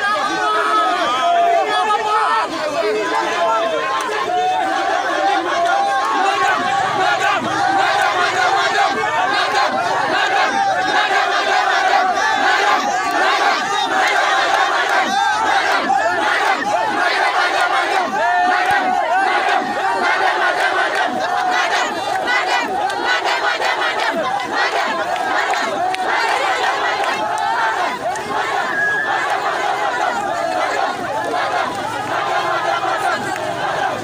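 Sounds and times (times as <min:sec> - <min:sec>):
crowd shouting angrily: 0:00.0 - 0:34.0.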